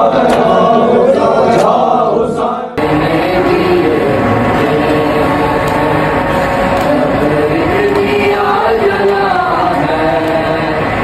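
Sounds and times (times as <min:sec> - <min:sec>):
group chanting: 0:00.0 - 0:11.0
male voices chanting a lament: 0:00.0 - 0:11.0.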